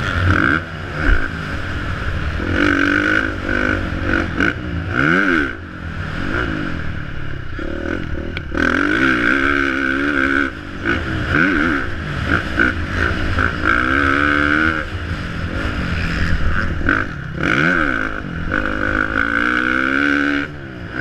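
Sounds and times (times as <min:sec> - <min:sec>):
motocross bike engine revving: 0:00.0 - 0:21.0.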